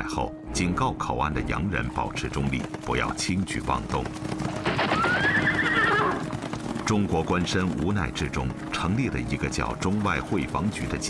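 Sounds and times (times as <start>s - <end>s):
faint background music: 0.0s - 11.0s
horse neighing: 4.6s - 6.6s.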